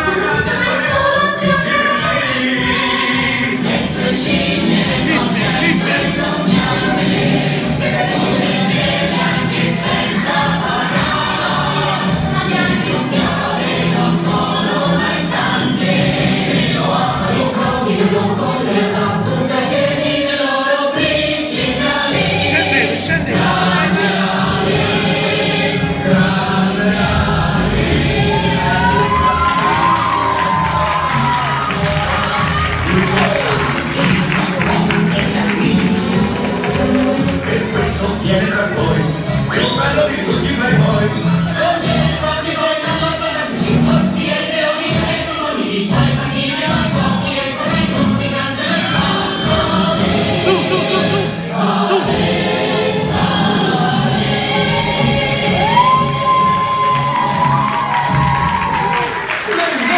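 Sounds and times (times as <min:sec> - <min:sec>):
choir singing over backing track: 0:00.0 - 0:59.9.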